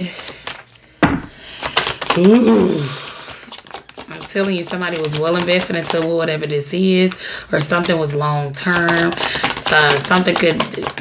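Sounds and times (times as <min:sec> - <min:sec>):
cards riffle shuffled: 0:00.2 - 0:00.8, 0:01.4 - 0:11.0.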